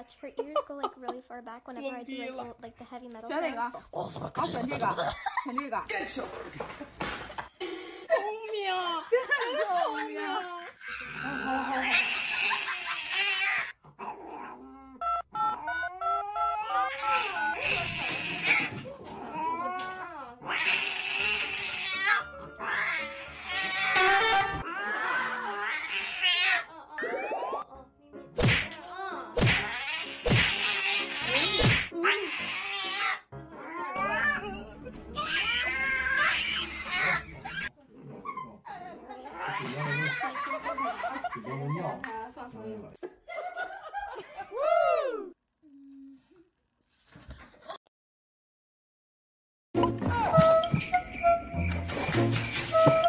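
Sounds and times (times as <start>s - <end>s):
cat yowling: 15.6s - 26.7s, 29.6s - 37.7s.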